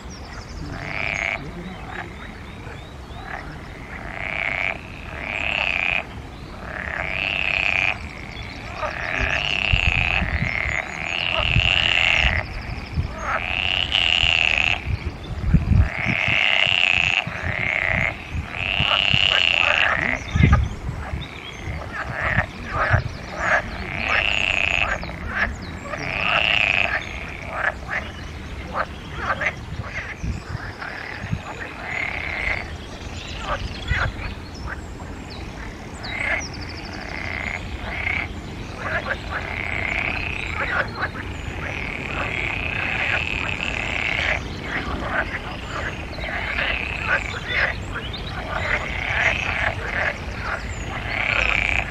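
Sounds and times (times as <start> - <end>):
frog croaking: 0.0 - 51.9.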